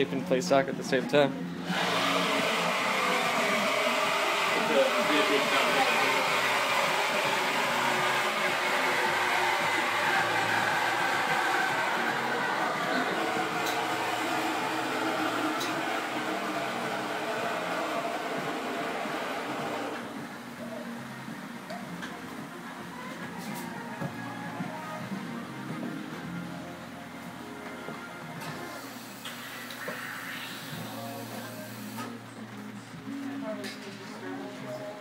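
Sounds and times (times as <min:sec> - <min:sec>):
mechanical whir and hiss: 0:28.5 - 0:32.2.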